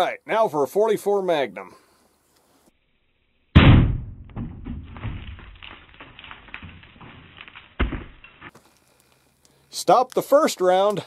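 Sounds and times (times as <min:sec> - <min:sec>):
sharp knock: 0:03.6 - 0:05.2.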